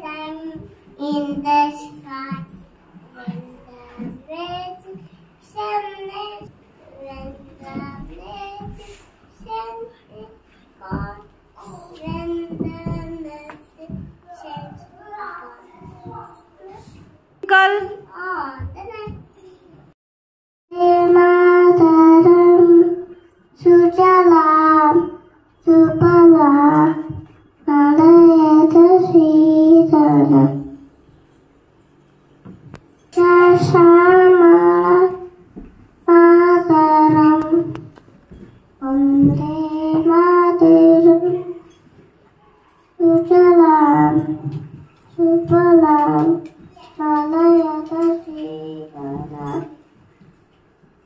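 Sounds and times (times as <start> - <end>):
child singing into a microphone: 0.0 - 17.0, 20.7 - 30.8, 33.1 - 41.7, 42.8 - 49.8.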